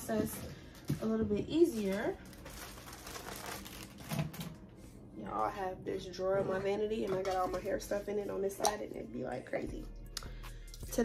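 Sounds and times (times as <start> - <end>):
crinkling rustles: 0.0 - 4.7.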